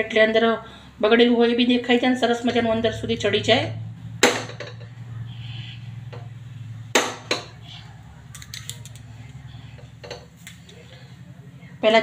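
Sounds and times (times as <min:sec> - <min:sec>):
gas burner low hum: 0:00.6 - 0:11.8.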